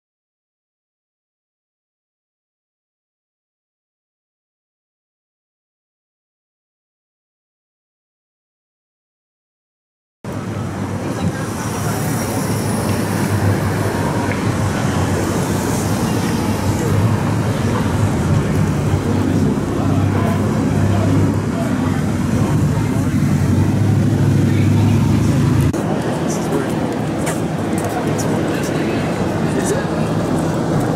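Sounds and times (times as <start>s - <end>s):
indistinct voices: 10.3s - 30.9s
low engine rumble: 10.3s - 30.9s
vehicles passing and idling: 10.3s - 30.9s.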